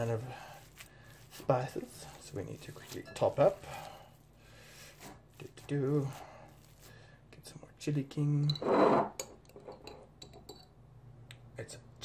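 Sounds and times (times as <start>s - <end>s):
glass clinking against kitchenware: 8.5s - 10.8s.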